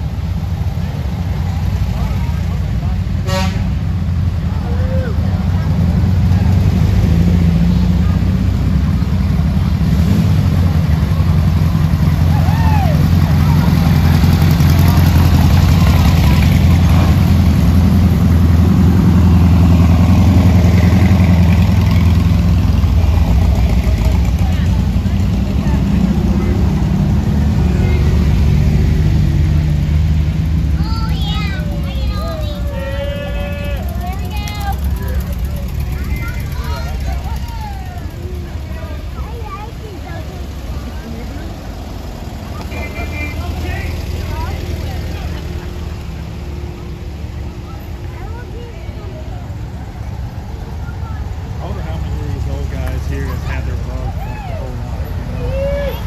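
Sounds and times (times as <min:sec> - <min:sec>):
motor trike engine drone: 0:00.0 - 0:56.0
vehicles driving slowly past: 0:00.0 - 0:56.0
short horn toot: 0:03.2 - 0:03.8.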